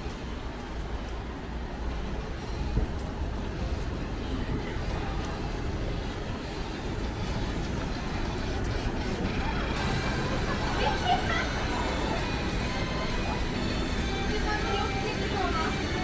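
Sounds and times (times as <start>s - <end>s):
faint music: 0.0s - 16.0s
traffic noise: 0.0s - 16.0s
voices: 0.0s - 16.0s.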